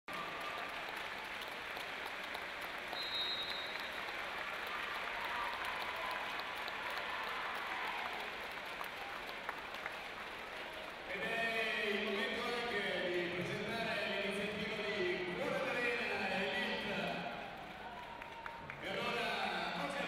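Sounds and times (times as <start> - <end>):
crowd applauding: 0.1 - 13.9, 15.7 - 20.0.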